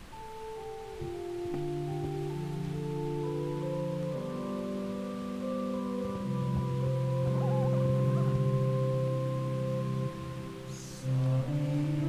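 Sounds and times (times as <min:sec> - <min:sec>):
sustained keyboard chords: 0:00.0 - 0:12.0.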